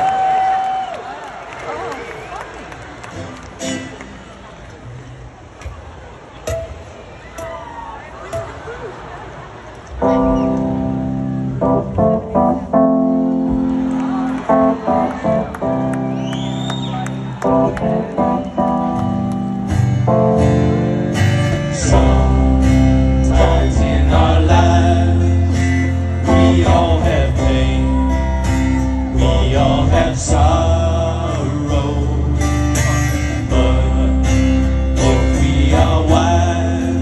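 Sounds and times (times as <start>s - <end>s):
live band with strummed guitars: 3.1s - 4.3s, 10.1s - 37.0s
person singing: 21.2s - 37.0s.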